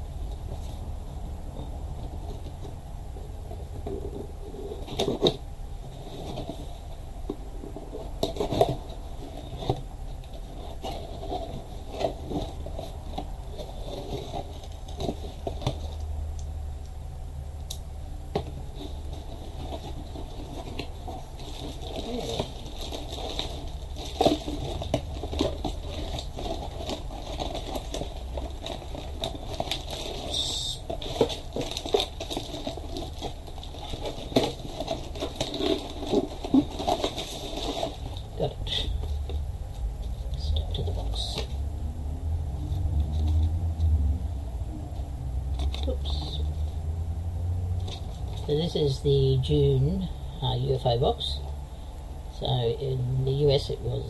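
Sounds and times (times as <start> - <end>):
sharp packaging rustle: 3.8 - 16.1, 18.4 - 41.8.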